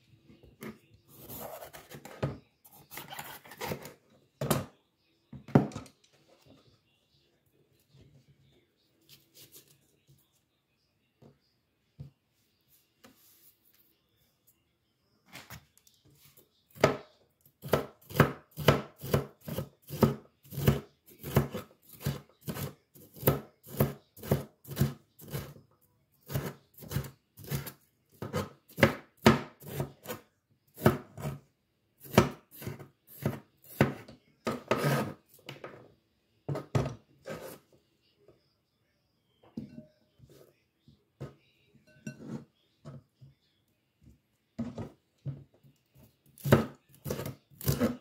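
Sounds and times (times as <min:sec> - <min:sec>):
knife chopping on cutting board: 0:17.6 - 0:25.6, 0:26.3 - 0:30.2, 0:30.8 - 0:31.4, 0:32.0 - 0:35.2, 0:46.4 - 0:48.0.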